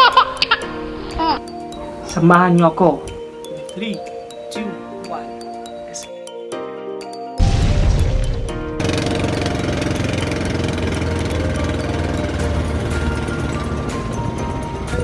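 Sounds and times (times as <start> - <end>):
faint background music: 0.0 - 6.6
boat engine rumble: 8.8 - 15.0.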